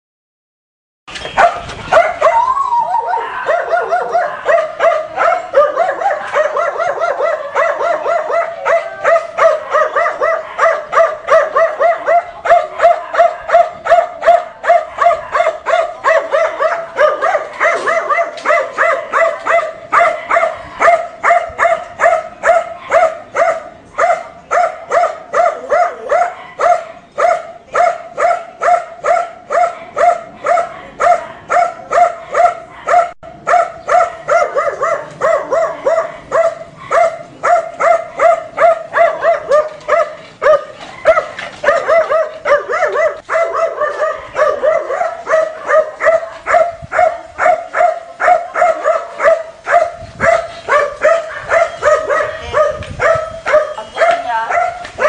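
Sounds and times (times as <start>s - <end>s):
dog barking: 1.4s - 2.5s, 3.2s - 55.0s.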